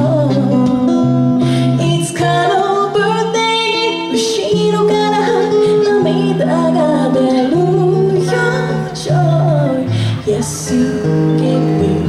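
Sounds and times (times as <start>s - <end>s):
amplified guitar: 0.0s - 12.0s
woman singing into microphone: 0.0s - 12.0s.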